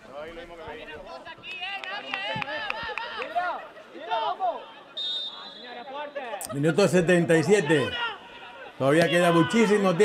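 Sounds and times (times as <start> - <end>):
crowd chatter: 0.0 - 10.0
voices shouting and calling: 0.7 - 10.0.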